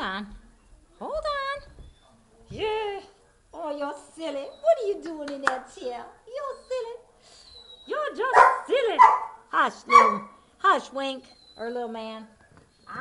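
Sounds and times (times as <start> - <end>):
dog barking: 8.2 - 10.4.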